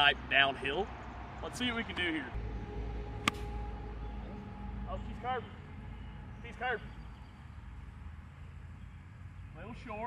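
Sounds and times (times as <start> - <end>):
golf club striking ball: 3.2 - 3.6.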